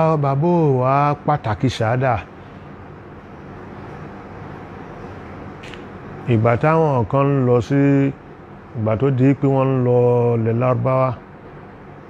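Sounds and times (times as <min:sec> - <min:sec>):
man chanting: 0:08.8 - 0:11.2.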